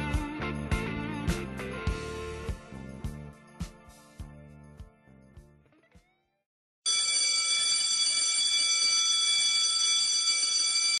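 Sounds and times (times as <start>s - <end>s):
alarm bell ringing: 6.9s - 11.0s.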